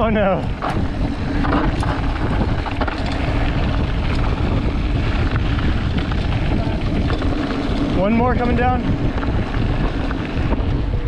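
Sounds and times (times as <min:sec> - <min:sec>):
bike clicks and rattles: 0:00.0 - 0:11.0
bike tyres rolling on gravel: 0:00.0 - 0:11.0
wind buffeting microphone: 0:00.0 - 0:11.0.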